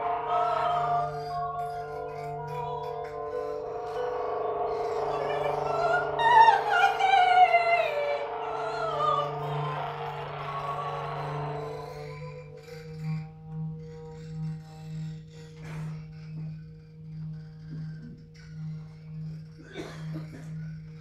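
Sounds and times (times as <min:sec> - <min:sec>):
quiet held high tones: 0:00.0 - 0:14.1
sliding pitched tones: 0:00.0 - 0:14.5
low sustained drone: 0:00.0 - 0:21.0.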